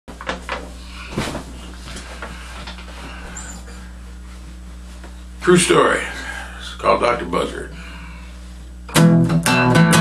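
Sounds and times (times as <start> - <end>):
steady low hum: 0.1 - 9.9.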